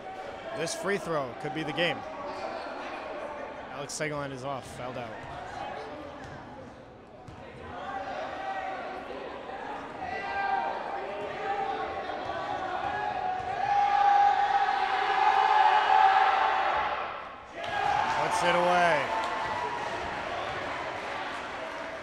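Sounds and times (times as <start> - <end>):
crowd yelling and shouting: 7.7 - 22.0.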